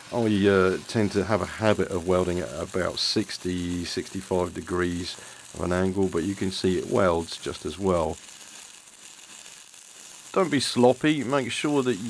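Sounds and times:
welding arc crackling: 0.0 - 12.0.

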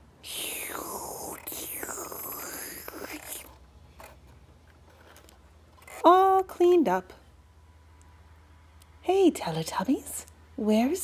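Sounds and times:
person whispering vacuum noises: 0.2 - 3.5.

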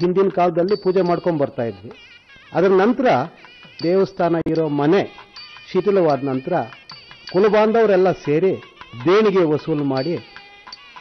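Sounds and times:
man speaking: 0.0 - 10.3
faint music: 0.0 - 11.0.

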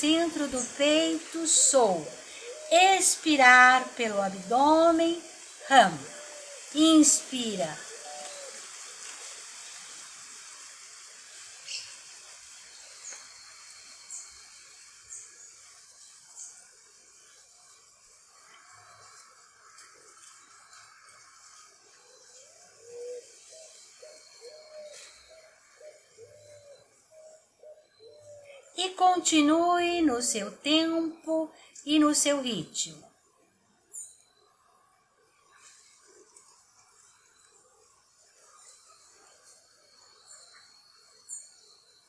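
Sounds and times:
low curved bird calls: 1.5 - 9.8, 18.4 - 28.8.

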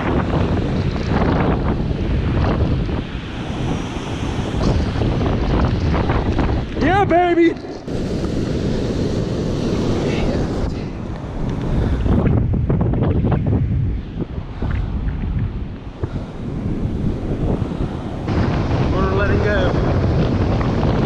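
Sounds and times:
breaking surf: 0.0 - 12.5, 13.9 - 21.0
wind buffeting microphone: 0.0 - 21.0.

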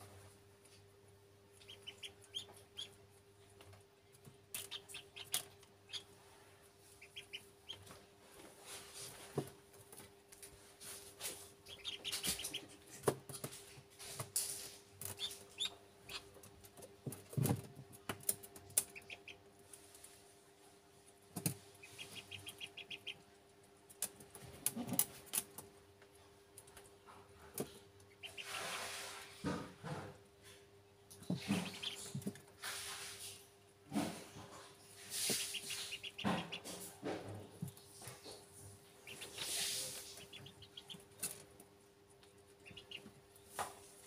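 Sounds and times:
ducklings peeping: 1.5 - 8.1, 11.2 - 13.5, 15.0 - 19.5, 21.4 - 25.6, 27.2 - 28.7, 31.1 - 32.5, 34.0 - 43.8.

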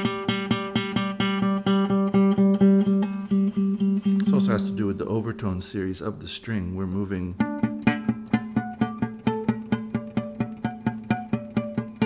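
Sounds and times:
guitar note picked rapidly: 0.0 - 5.0, 7.4 - 12.0.

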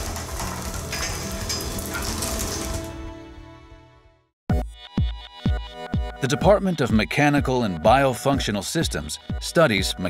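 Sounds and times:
chunks falling: 0.0 - 3.0
concrete crackling and crumbling: 0.0 - 3.1
background music: 0.0 - 10.0.

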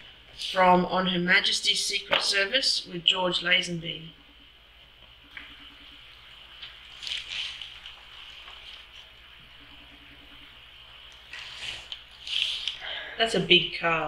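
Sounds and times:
low steady hum: 0.0 - 14.0.

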